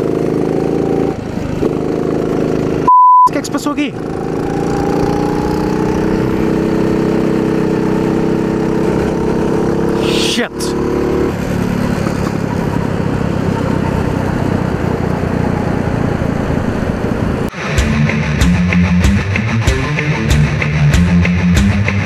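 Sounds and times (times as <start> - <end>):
kart engine at high revs: 0.0 - 2.9, 3.8 - 17.3
wind and road noise: 0.0 - 17.5.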